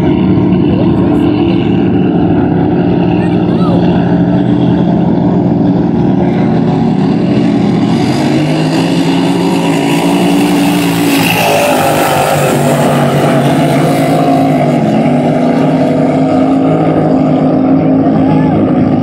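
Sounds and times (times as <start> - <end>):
boat passing by: 0.0 - 19.0
racing boat engines: 0.0 - 19.0.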